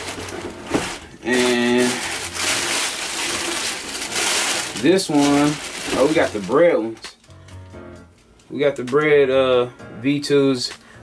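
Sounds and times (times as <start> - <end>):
tissue paper rustling: 0.0 - 7.2.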